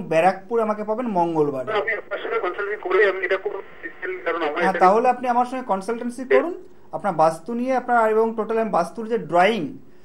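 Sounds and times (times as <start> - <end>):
man talking: 0.0 - 9.8.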